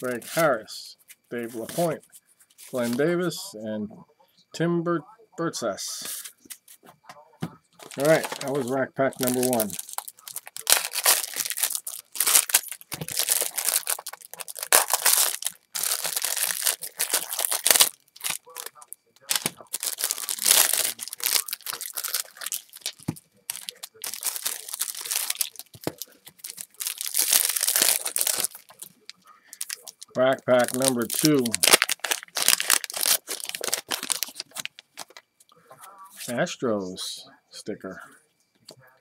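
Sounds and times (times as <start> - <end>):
wrappers crinkling and tearing: 7.8 - 35.2.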